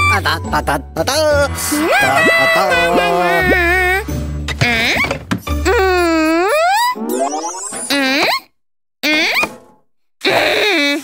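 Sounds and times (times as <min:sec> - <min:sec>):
cartoon sound effects: 0:01.8 - 0:04.0, 0:05.7 - 0:09.5.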